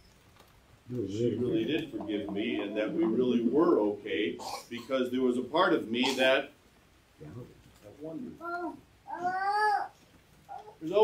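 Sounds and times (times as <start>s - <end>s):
man speaking: 0.9s - 6.6s, 10.8s - 11.0s.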